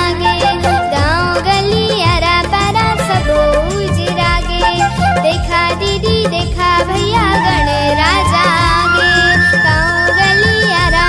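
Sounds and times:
devotional song with rhythmic beat: 0.0 - 11.0.

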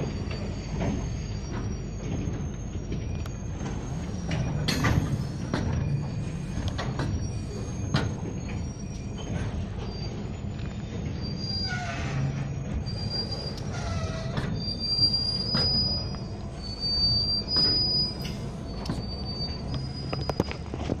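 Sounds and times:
rumble of train wheels: 0.0 - 21.0
train wheels squealing on rail: 0.0 - 21.0
knocks and clanks from cars: 0.8 - 8.6.

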